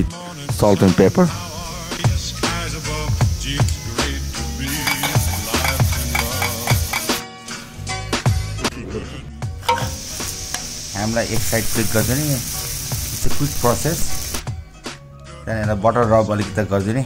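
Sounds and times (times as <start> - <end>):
background music with low beat: 0.0 - 8.7
spoon beating egg in metal bowl: 4.7 - 7.2.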